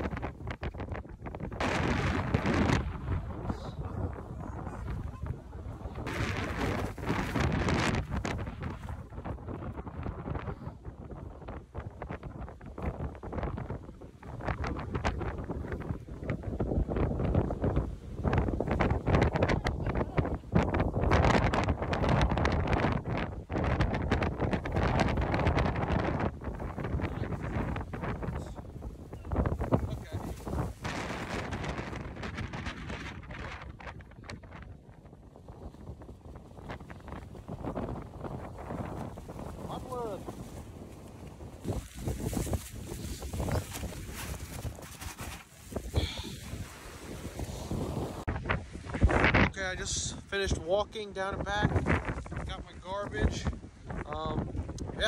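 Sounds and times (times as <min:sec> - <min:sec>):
wind buffeting microphone: 0:00.0 - 0:55.0
microphone crackles: 0:36.6 - 0:49.6.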